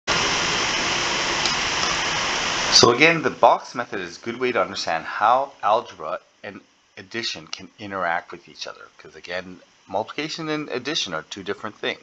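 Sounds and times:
steady background hiss: 0.1s - 12.0s.

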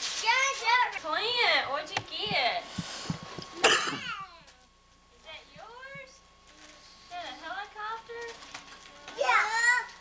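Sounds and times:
young children's wordless voices: 0.2s - 1.1s, 8.8s - 10.0s.

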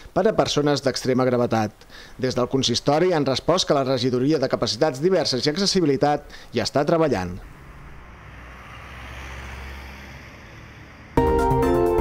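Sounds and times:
vehicle engine rumble: 7.0s - 11.2s.

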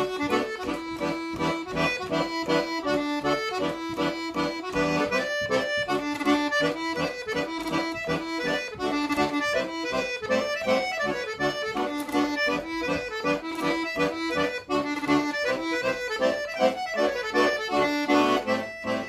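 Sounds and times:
accordion playing a dance tune: 0.0s - 19.0s.

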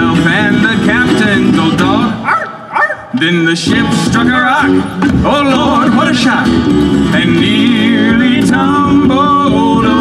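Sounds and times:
acoustic guitar: 0.0s - 10.0s
electric bass: 0.0s - 10.0s.

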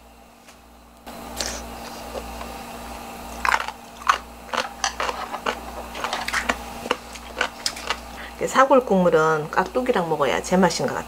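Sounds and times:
low steady hum: 0.0s - 11.0s
eating crunches and clicks: 3.3s - 8.2s.

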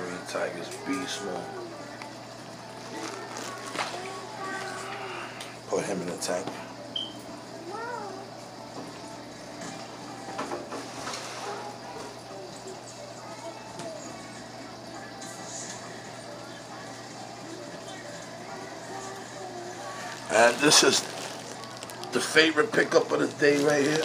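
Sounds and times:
faint indistinct voices: 0.0s - 24.0s.

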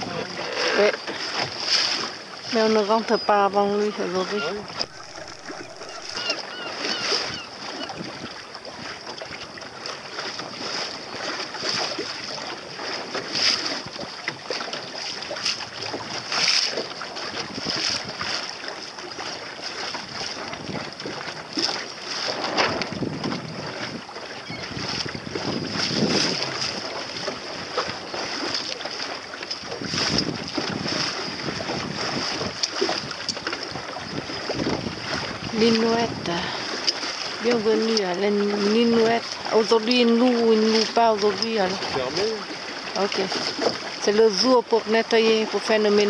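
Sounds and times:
water slapping boat hull: 0.0s - 46.0s
wind buffeting microphone: 2.2s - 9.7s, 17.2s - 18.4s, 19.8s - 28.5s, 29.6s - 46.0s.

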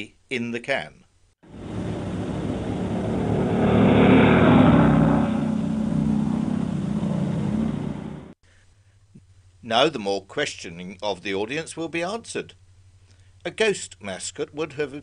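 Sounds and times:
road noise on dirt track: 1.4s - 8.4s
vehicle engines: 1.4s - 8.4s.

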